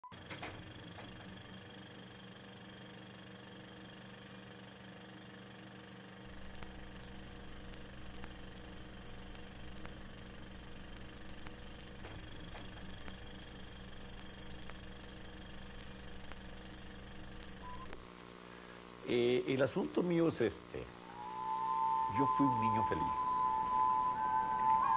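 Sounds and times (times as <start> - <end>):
film projector running: 0.1 - 21.2
deep low hum: 6.3 - 18.0
crackling clicks: 6.3 - 18.1.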